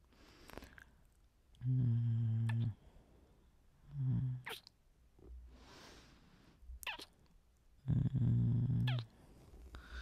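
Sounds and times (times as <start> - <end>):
squeaky kiss: 4.5 - 4.7, 6.8 - 7.2, 8.8 - 9.1.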